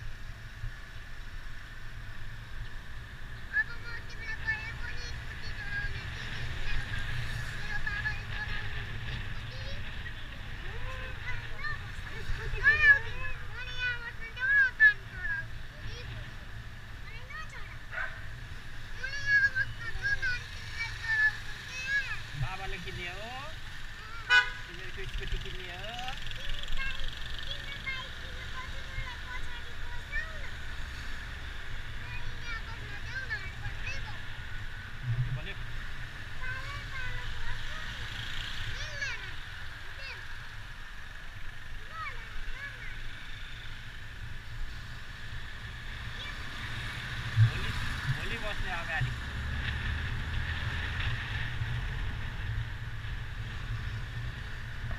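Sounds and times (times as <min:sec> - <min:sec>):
motorbike engine hum: 0:00.0 - 0:54.9
vehicle horn toot: 0:24.3 - 0:24.7.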